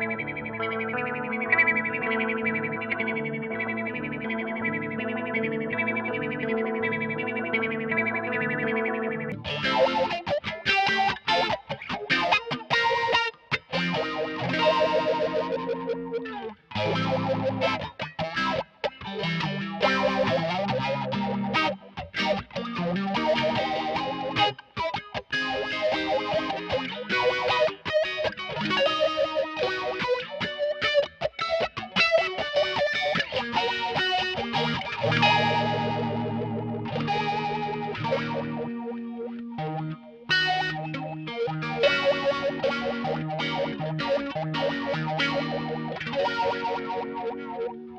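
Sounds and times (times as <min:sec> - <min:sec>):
electric guitar with sweeping filter: 0:00.0 - 0:47.9.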